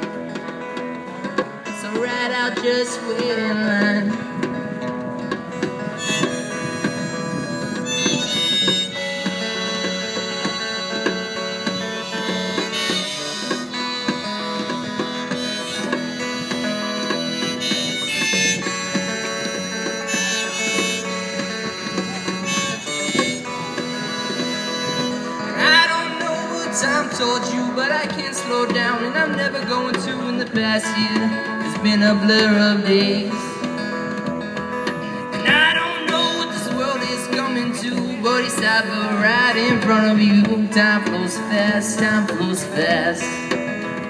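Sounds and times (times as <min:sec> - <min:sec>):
electric guitar: 0:00.0 - 0:44.0
hand drum rhythm: 0:00.0 - 0:44.0.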